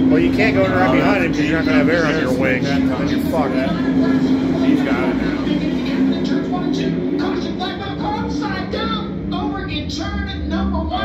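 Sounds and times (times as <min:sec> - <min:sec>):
background music: 0:00.0 - 0:11.0
indistinct voices: 0:00.0 - 0:11.0
steady low hum: 0:00.0 - 0:11.0.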